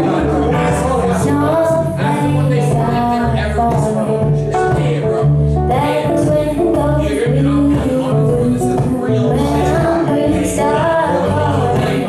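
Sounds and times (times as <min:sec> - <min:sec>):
woman singing: 0:00.0 - 0:04.4, 0:05.6 - 0:12.0
bass line: 0:00.0 - 0:12.0
guitars strummed and plucked: 0:00.0 - 0:12.0.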